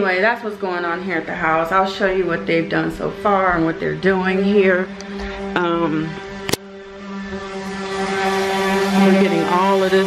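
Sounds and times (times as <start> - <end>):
power tool motor humming: 3.4 - 10.0.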